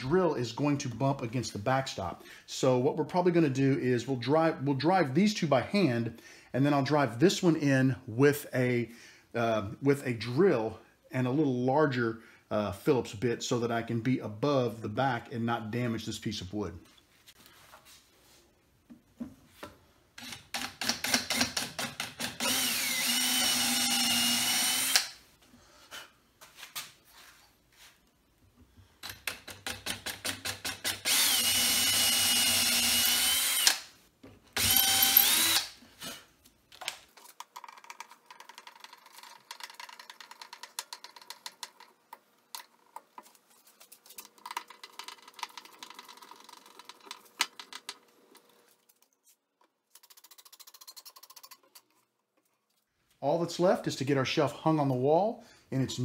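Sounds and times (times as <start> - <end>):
cordless drill whining: 22.2 - 25.2, 30.8 - 33.9, 34.6 - 35.8.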